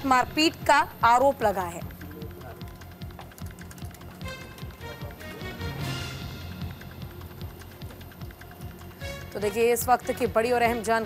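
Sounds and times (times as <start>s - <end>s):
news background music: 0.0s - 11.0s.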